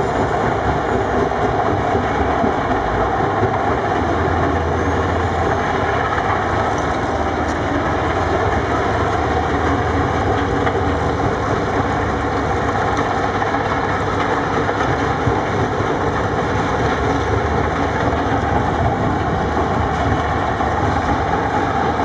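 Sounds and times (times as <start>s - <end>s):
rock crusher running: 0.0s - 22.0s
wheel loader diesel engine: 0.0s - 22.0s.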